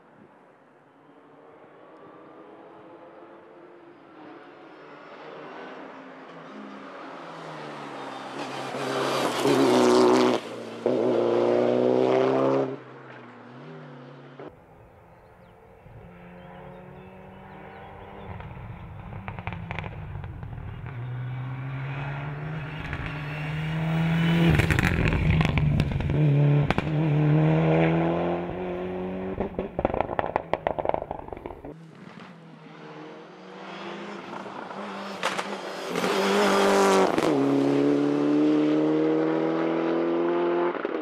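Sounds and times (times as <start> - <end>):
rally car engine revving: 8.4 - 12.8, 16.0 - 41.0
exhaust crackles and pops: 18.3 - 21.0, 24.6 - 26.9, 29.3 - 31.8.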